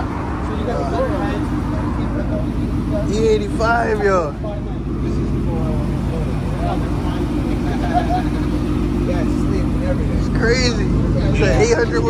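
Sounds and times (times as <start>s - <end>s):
men talking: 0.0s - 12.0s
truck engine idling: 0.0s - 12.0s.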